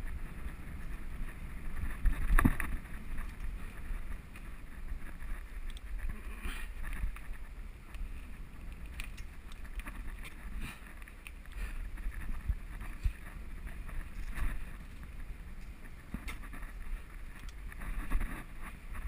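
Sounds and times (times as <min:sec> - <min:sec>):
mountain bike rolling on dirt: 0:00.0 - 0:19.0
wind buffeting microphone: 0:00.0 - 0:19.0.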